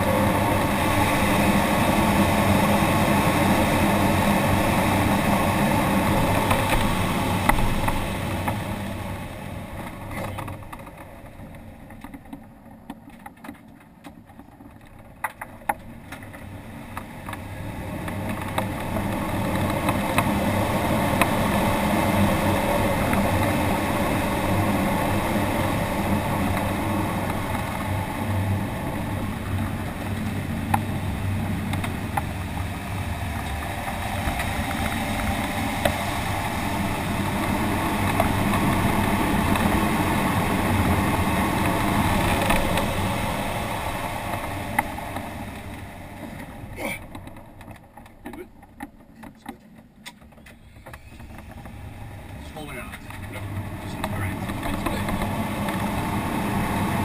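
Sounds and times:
air rushing over glider canopy: 0.0s - 11.4s, 16.4s - 46.8s, 51.0s - 57.0s.

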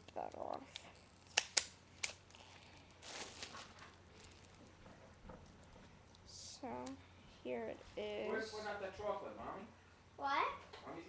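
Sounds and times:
plastic shrink-wrap tearing: 1.2s - 4.7s.

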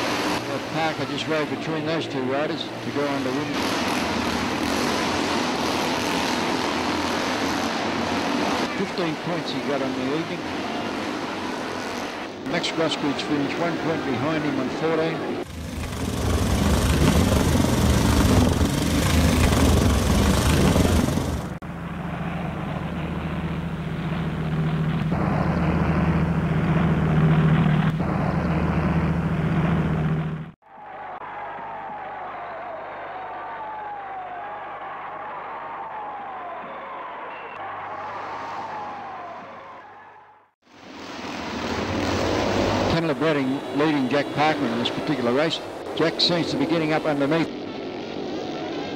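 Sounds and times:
motorcycle engines racing: 0.0s - 30.6s, 41.2s - 48.9s.

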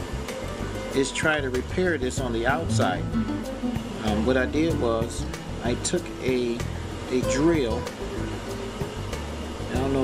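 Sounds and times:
low background hum: 0.9s - 8.8s
man talking: 2.2s - 3.2s, 4.0s - 6.5s.

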